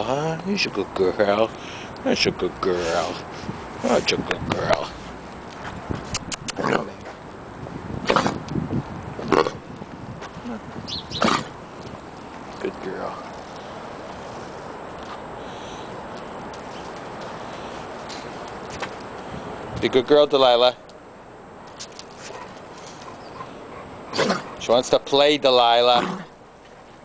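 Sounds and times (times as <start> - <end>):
steady background noise: 0.0 - 27.0
dogs moving on concrete: 16.1 - 19.3, 21.6 - 24.8
dog sniffing: 22.2 - 24.7
dog snorting: 22.3 - 24.6.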